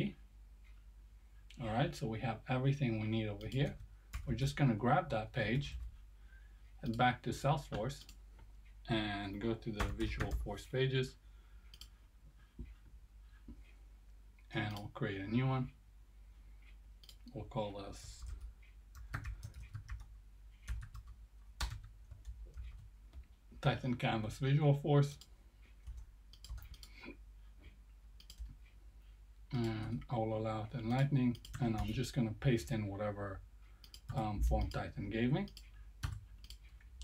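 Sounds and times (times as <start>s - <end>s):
computer mouse clicks: 3.4s - 4.4s, 11.7s - 12.0s, 16.6s - 17.4s, 25.2s - 28.8s, 30.9s - 32.0s, 33.8s - 34.8s, 35.4s - 37.0s.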